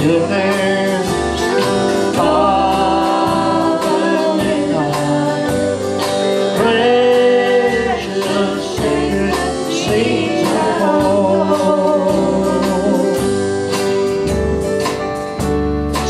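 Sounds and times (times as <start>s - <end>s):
person singing: 0.0s - 14.0s
backing band with steady beat: 0.0s - 16.0s
electric guitar: 0.0s - 16.0s.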